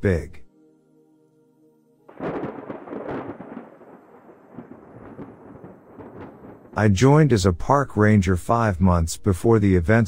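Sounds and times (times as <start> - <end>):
thunder crack and rumble: 2.1 - 7.4.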